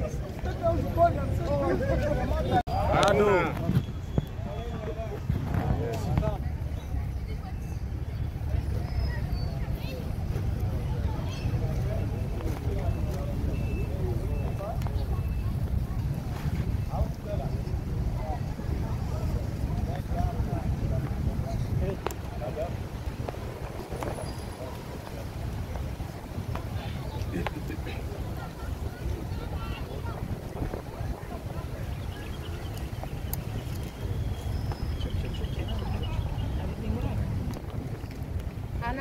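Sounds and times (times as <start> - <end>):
distant voices: 0.0 - 39.0
wind buffeting microphone: 0.0 - 39.0.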